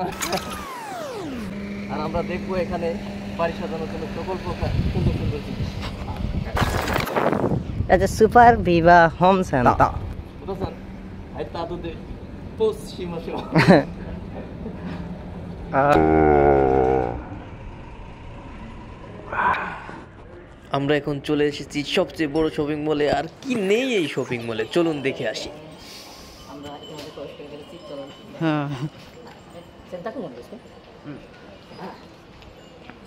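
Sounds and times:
man humming: 0:15.7 - 0:17.5
store background noise: 0:17.0 - 0:33.0.

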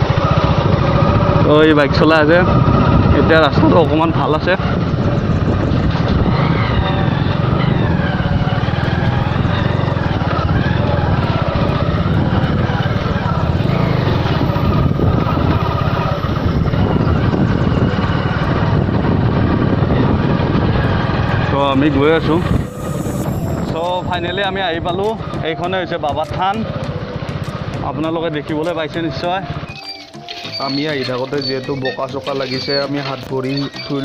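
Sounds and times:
wind rushing over microphone: 0:00.0 - 0:28.6
motorcycle engine running: 0:00.0 - 0:34.0.

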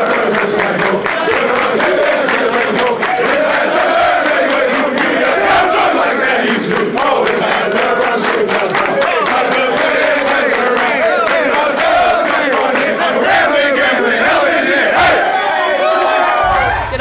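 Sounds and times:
group shout-singing in unison: 0:00.0 - 0:17.0
rhythmic hand claps: 0:00.0 - 0:17.0.

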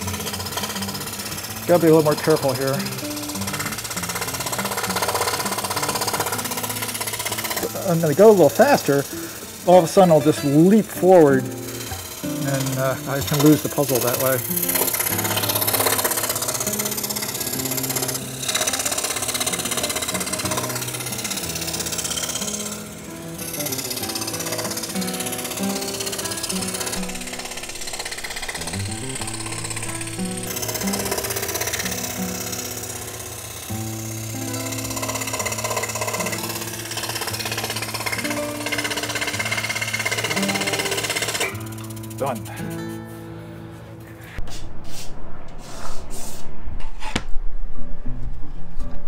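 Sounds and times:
scroll saw blade chattering: 0:00.0 - 0:41.6
background music: 0:00.0 - 0:44.4.

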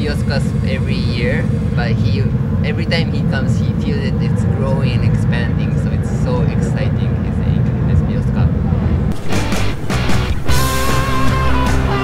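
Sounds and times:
racing car engines rumbling: 0:00.0 - 0:12.0.

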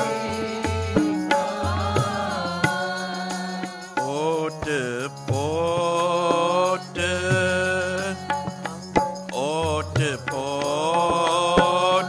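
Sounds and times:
tabla strokes: 0:00.0 - 0:04.0
person singing melodic line: 0:00.0 - 0:04.9
sustained harmonium: 0:00.0 - 0:12.0.

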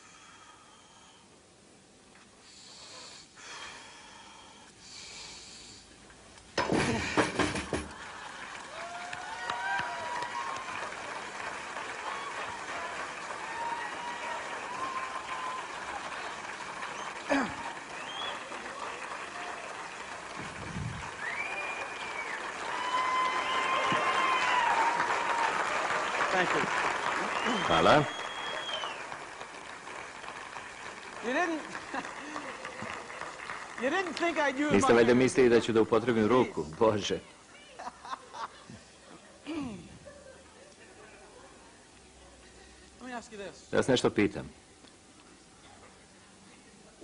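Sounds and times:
audience applauding and cheering: 0:07.4 - 0:36.9
shouts and whistles: 0:16.9 - 0:18.6, 0:21.2 - 0:25.4, 0:27.3 - 0:29.1.

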